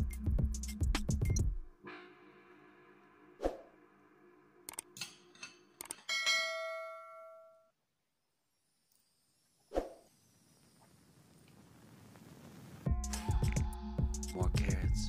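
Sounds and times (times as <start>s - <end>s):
bell-like ding: 6.0s - 7.7s.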